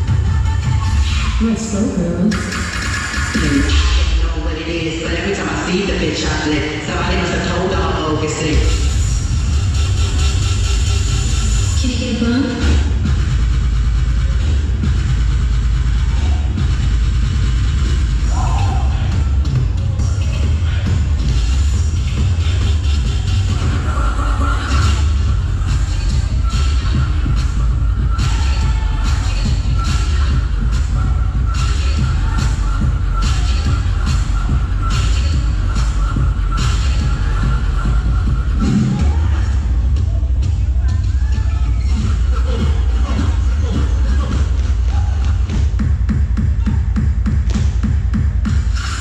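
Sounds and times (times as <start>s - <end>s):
electronic dance music with heavy bass: 0.0s - 49.0s.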